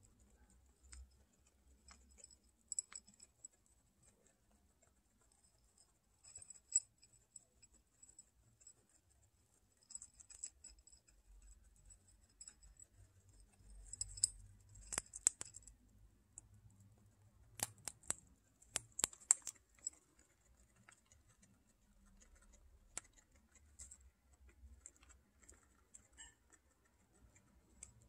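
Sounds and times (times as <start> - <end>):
guinea pigs chewing pellets: 0.0 - 28.0.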